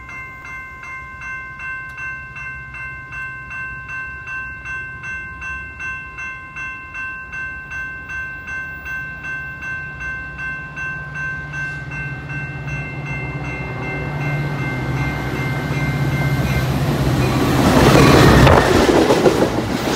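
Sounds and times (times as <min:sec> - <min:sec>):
crossing warning bell clanging: 0:00.0 - 0:19.9
train rumble: 0:07.3 - 0:19.9.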